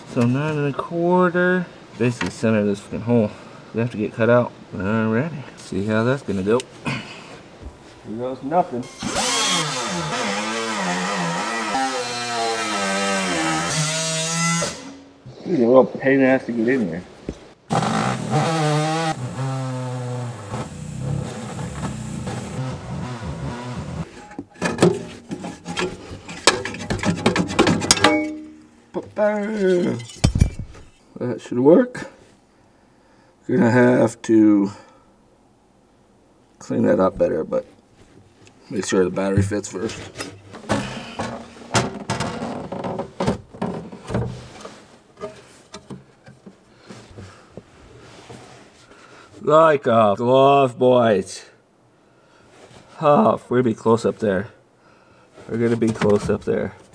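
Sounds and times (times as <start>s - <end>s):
pneumatic cutting tool cutting metal: 8.9s - 12.3s
metallic knocks and clanks: 24.2s - 31.0s.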